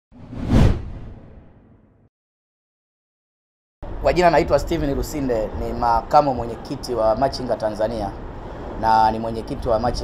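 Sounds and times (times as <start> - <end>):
whoosh with low rumble: 0.1 - 2.0.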